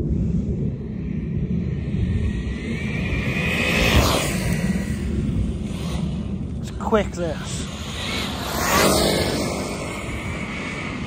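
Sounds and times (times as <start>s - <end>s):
wind rumble on microphone: 0.0s - 11.0s
rc car electric motor whining: 2.8s - 6.3s, 7.6s - 11.0s.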